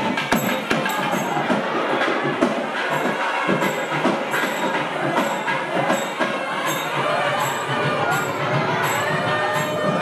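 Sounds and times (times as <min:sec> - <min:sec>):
festival percussion din: 0:00.0 - 0:10.0.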